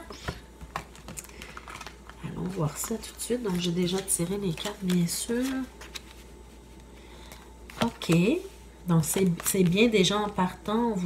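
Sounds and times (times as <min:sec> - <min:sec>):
cards clicking and tapping: 0:00.1 - 0:02.1, 0:02.8 - 0:06.1.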